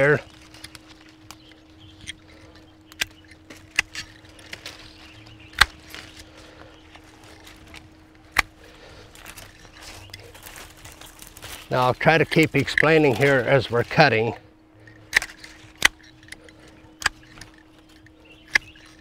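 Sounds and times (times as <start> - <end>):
faint steady hum: 0.0 - 19.0
pruning shears snipping: 0.0 - 19.0.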